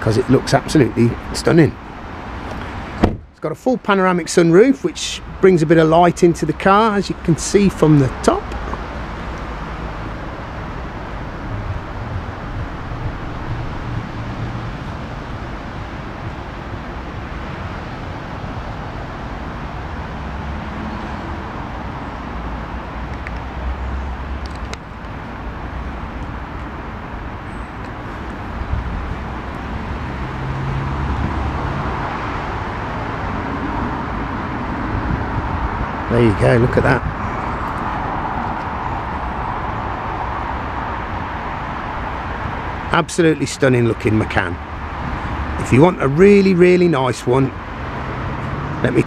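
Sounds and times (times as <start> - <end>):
outdoor background noise: 0.0 - 49.0.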